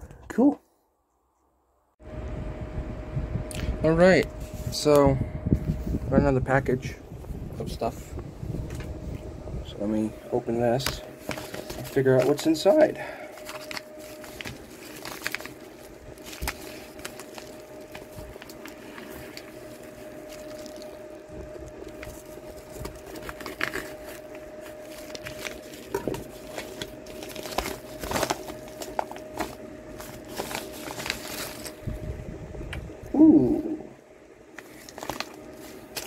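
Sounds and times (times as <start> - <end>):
faint steady hum: 0.0 - 36.0
packaging crinkling and tearing: 10.7 - 31.9, 34.5 - 36.0.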